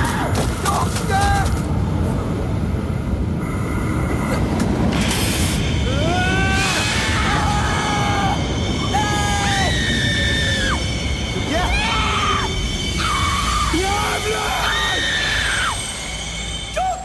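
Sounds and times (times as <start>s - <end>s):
people screaming: 5.8s - 17.0s.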